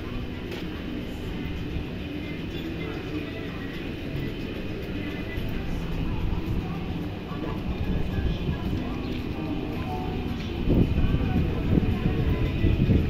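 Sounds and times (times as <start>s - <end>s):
faint music: 0.0s - 13.0s
faint voices: 0.0s - 13.0s
wind rumble on microphone: 10.4s - 13.0s.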